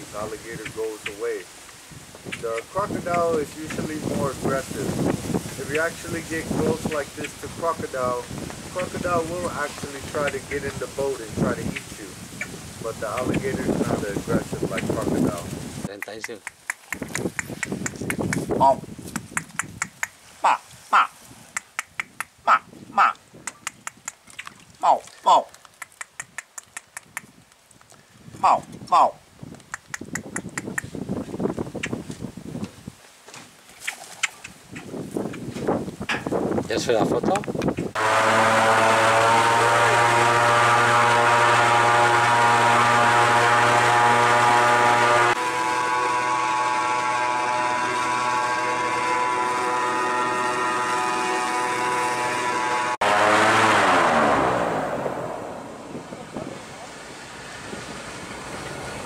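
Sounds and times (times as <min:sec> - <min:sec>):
man calling short syllable: 0:05.6 - 0:12.2, 0:18.4 - 0:18.9, 0:20.4 - 0:21.2, 0:22.4 - 0:23.2, 0:24.8 - 0:25.5, 0:28.4 - 0:29.2
sharp clicks: 0:15.9 - 0:18.5, 0:19.1 - 0:20.2, 0:21.5 - 0:22.4, 0:23.4 - 0:24.6, 0:25.6 - 0:27.3, 0:29.6 - 0:30.9
airboat engine and propeller drone: 0:38.0 - 0:59.0.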